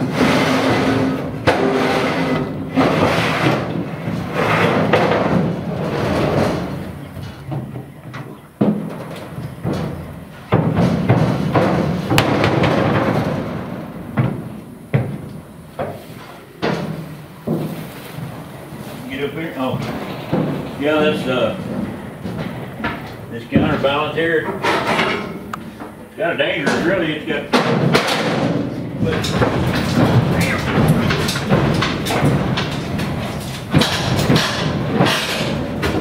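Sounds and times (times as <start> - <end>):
metal clattering: 0.0 - 36.0
sharp metal bangs: 10.6 - 15.2.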